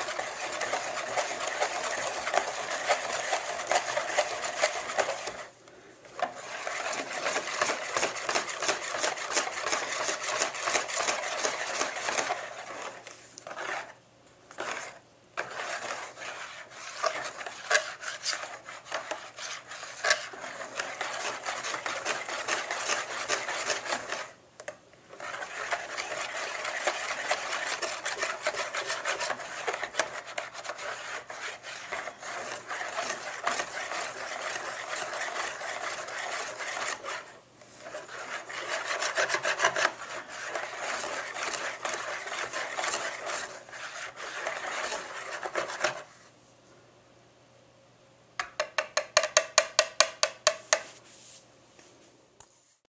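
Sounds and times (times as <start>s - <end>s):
whisk beating batter in a bowl: 0.0s - 5.6s, 6.2s - 24.4s, 25.1s - 46.2s.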